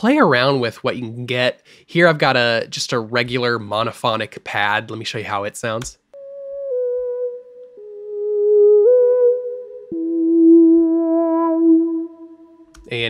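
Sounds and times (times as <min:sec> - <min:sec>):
synth pad melody: 0:06.2 - 0:12.8.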